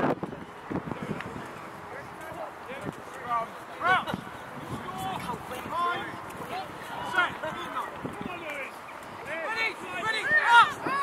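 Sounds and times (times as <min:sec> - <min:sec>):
open-field background noise: 0:00.0 - 0:11.0
distant people shouting: 0:03.8 - 0:11.0.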